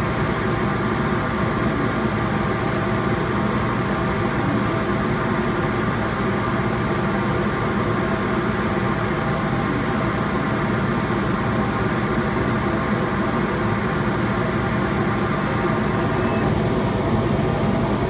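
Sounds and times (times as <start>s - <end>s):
laser cutter machinery humming: 0.0s - 18.0s.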